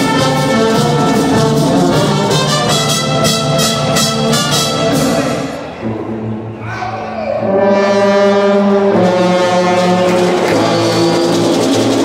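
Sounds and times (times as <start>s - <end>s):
brass band playing held chords: 0.0s - 6.6s, 7.3s - 12.0s
low brass bass line: 0.0s - 6.6s, 7.4s - 12.0s.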